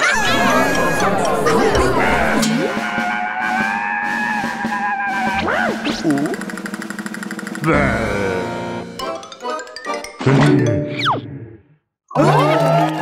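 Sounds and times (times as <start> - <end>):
held shriek or laugh: 0.0 - 5.8
cartoon character voices: 0.0 - 6.4, 7.6 - 8.8
background music: 0.0 - 11.5.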